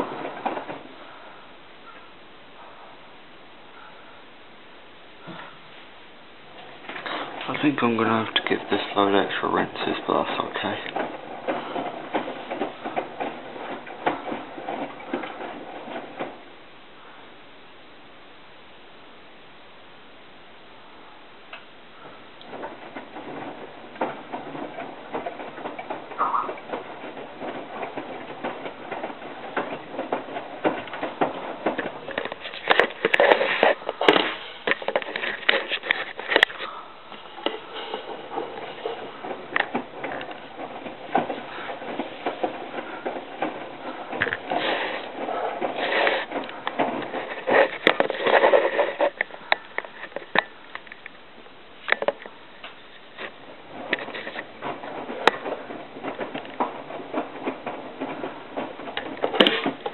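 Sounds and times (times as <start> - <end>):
washing machine drum sloshing: 6.6 - 16.4, 22.0 - 48.2.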